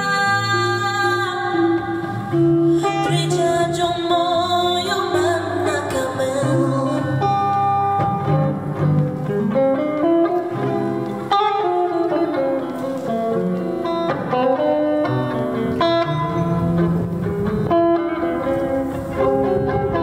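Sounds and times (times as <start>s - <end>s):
plucked guitar melody: 0.0s - 20.0s.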